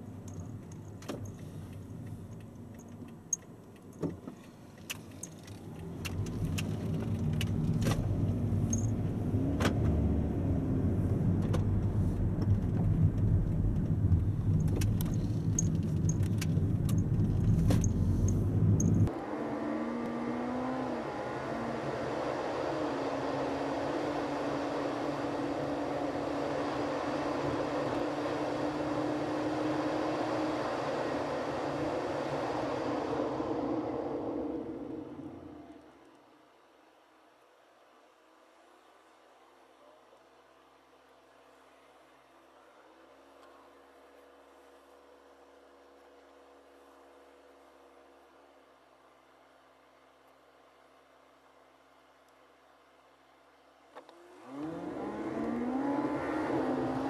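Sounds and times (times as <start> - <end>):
higher thinner road noise: 0.0 - 36.5
engine and road noise rumble: 0.0 - 37.0, 40.5 - 57.0
light clicks and rattles: 0.2 - 8.0, 11.4 - 19.1.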